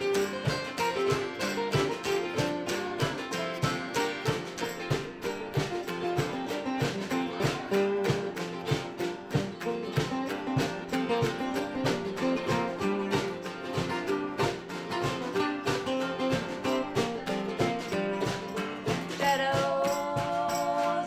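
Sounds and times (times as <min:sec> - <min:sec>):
acoustic guitars strumming: 0:00.0 - 0:21.0.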